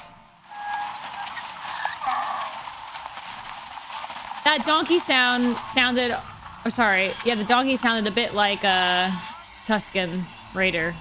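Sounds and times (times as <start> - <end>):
outdoor ambience: 0.0 - 11.0
donkey braying: 0.5 - 8.5.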